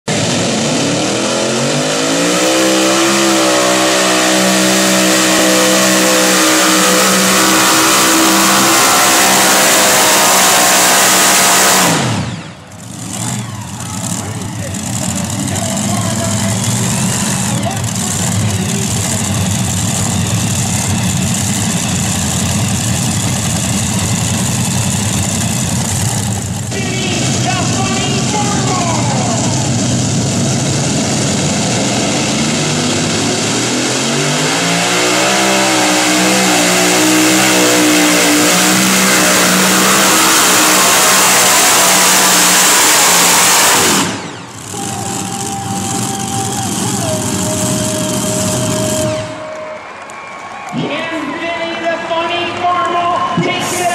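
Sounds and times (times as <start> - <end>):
engines running steadily: 0.0 - 53.9
tractor engines at full throttle: 0.0 - 53.9.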